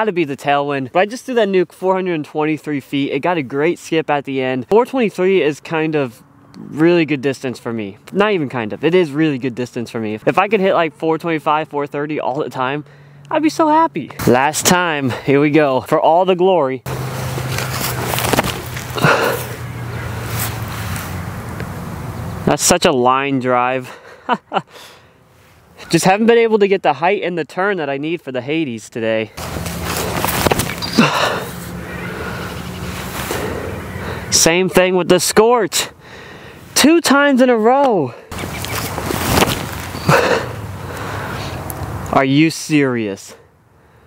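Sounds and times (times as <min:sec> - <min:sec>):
outdoor noise with low hum: 0:00.0 - 0:44.0
sharp rush of thrown disc: 0:16.9 - 0:19.6, 0:29.4 - 0:31.6, 0:38.4 - 0:40.5
disc throw burst: 0:16.9 - 0:21.2, 0:29.4 - 0:33.8
rustling footsteps of run-up: 0:16.9 - 0:21.8, 0:29.4 - 0:31.6, 0:38.3 - 0:40.4
heavy sigh: 0:23.9 - 0:25.2.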